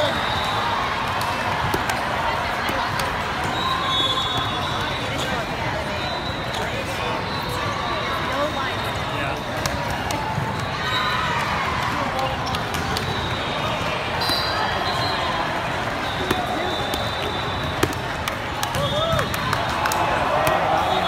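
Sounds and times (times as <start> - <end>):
volleyballs hit and bouncing: 0.0 - 5.6, 8.9 - 21.0
chatter of many people: 0.0 - 21.0.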